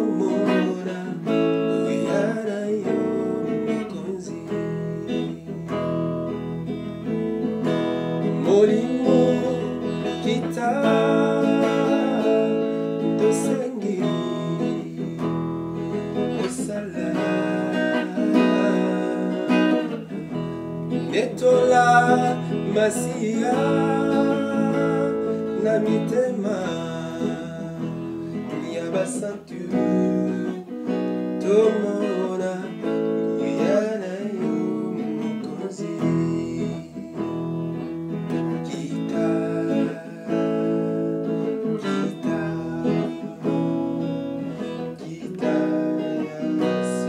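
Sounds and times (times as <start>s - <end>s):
acoustic guitar strumming: 0.0s - 47.0s
person singing: 0.0s - 47.0s.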